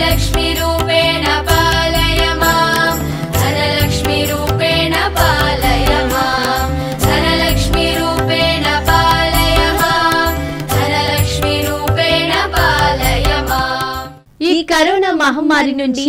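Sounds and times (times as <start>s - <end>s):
melodic backing with bass: 0.0s - 14.2s
percussion strokes: 0.0s - 14.2s
person singing a chant-like hymn: 0.0s - 14.2s.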